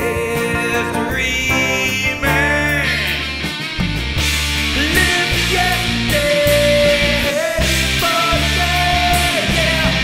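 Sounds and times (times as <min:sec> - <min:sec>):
rock band music: 0:00.0 - 0:10.0.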